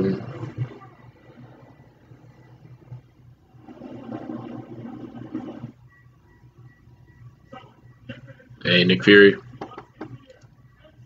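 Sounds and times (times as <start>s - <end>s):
muffled cartoon soundtrack: 0.0s - 11.0s
steady low hum: 0.0s - 11.0s.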